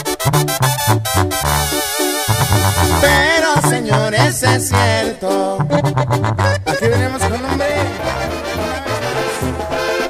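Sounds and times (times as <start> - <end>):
steady bass line: 0.0 - 8.8
accordion melody: 0.0 - 10.0.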